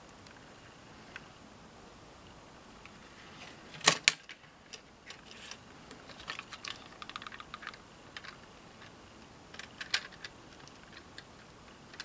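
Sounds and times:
plastic model coach clicking: 0:06.1 - 0:12.0.

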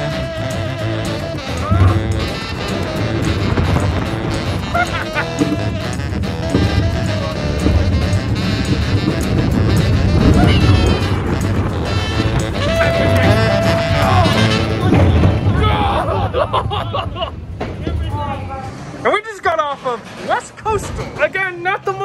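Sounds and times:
music playing: 0:00.0 - 0:16.1
roller coaster rumbling on track: 0:00.0 - 0:22.0.

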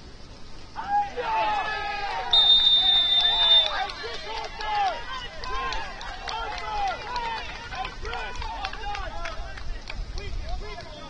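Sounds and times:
distant players shouting: 0:00.8 - 0:09.6.

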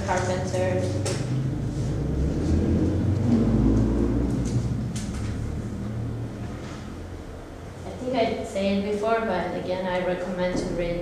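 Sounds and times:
low rumble: 0:00.6 - 0:07.6.

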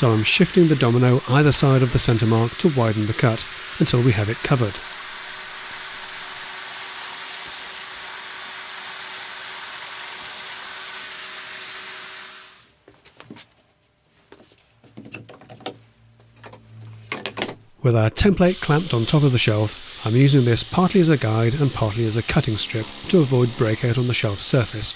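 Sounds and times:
power tool cutting wood: 0:00.0 - 0:12.7, 0:17.9 - 0:24.9.

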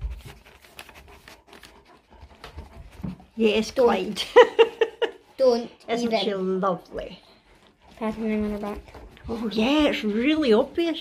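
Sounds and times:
dog breathing: 0:00.0 - 0:11.0.

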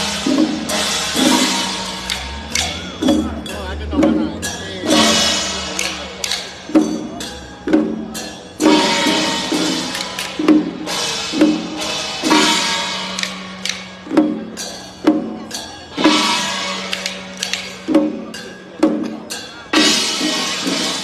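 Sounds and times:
crashing cymbals: 0:00.0 - 0:21.0
drum beats: 0:00.0 - 0:21.0.

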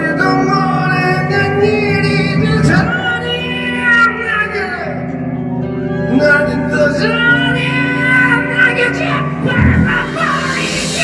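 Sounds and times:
live heavy metal band playing: 0:09.2 - 0:11.0
high bending guitar melody: 0:09.4 - 0:11.0.

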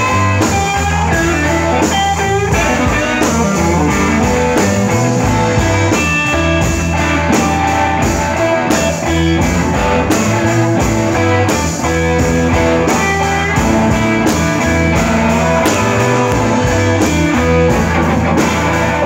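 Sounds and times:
bass line: 0:00.0 - 0:19.0
drum kit with cymbals: 0:00.0 - 0:19.0
electric guitars: 0:00.0 - 0:19.0.

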